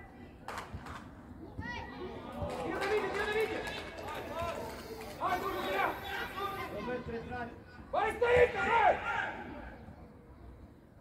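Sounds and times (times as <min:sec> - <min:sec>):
young players calling and shouting: 0:00.0 - 0:10.8.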